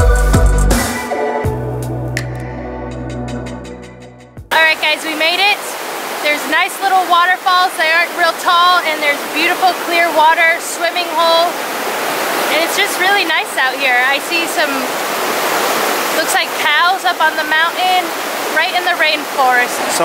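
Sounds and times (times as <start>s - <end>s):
woman talking: 4.5s - 11.6s, 12.5s - 14.9s, 16.2s - 19.8s
waterfall rushing over rock: 4.5s - 20.0s.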